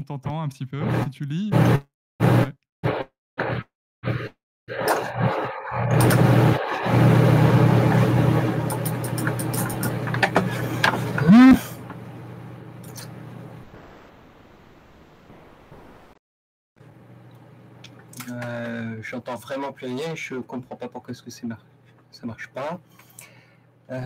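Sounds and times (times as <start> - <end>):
buzzing microphone hum: 10.6 - 11.8.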